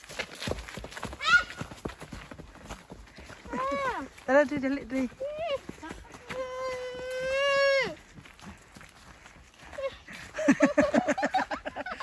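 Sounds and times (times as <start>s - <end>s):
running footsteps on dry leaves: 0.0s - 12.0s
child shouting: 1.2s - 1.7s, 5.2s - 8.0s.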